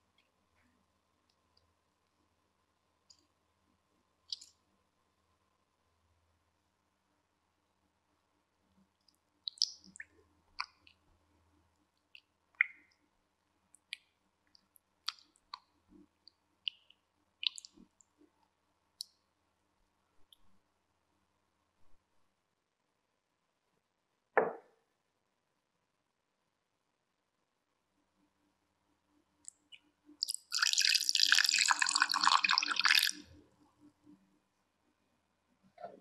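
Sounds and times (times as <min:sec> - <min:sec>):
soft squish of mixture: 0:00.0 - 0:05.8, 0:07.8 - 0:22.0
milk pouring into a bowl: 0:30.2 - 0:33.3.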